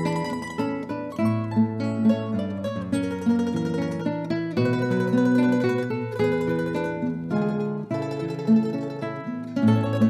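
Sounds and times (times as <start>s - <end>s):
acoustic guitar music: 0.0s - 10.0s.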